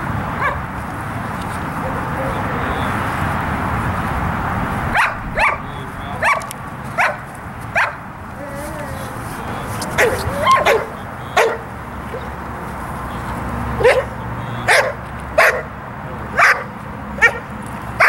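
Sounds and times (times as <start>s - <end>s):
dog barking: 0.4s - 0.7s, 4.9s - 8.1s, 9.9s - 12.3s, 13.8s - 18.0s.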